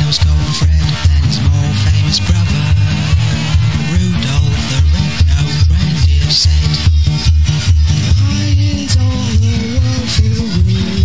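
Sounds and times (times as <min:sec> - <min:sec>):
bass beat: 0:00.0 - 0:11.0
sliding melody line: 0:00.0 - 0:11.0.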